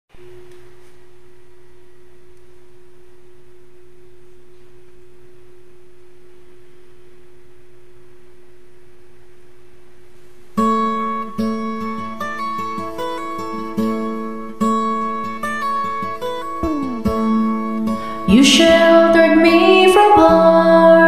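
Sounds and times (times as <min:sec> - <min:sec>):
steady pure tone: 0:00.1 - 0:12.4, 0:16.5 - 0:21.0
faint low hum: 0:00.2 - 0:10.6, 0:16.6 - 0:21.0.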